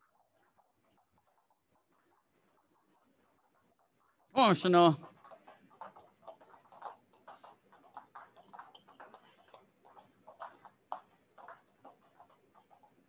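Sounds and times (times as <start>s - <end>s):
jump ropes slapping foam mat: 0.0s - 13.0s.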